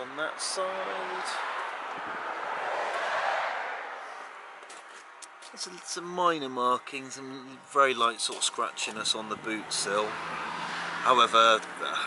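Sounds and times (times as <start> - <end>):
passing vehicle road noise: 0.0 - 5.9, 8.6 - 12.0.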